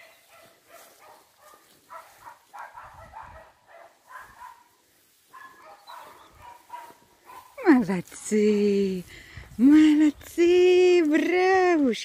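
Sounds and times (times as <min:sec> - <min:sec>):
faint puppies yapping: 0:00.0 - 0:07.7.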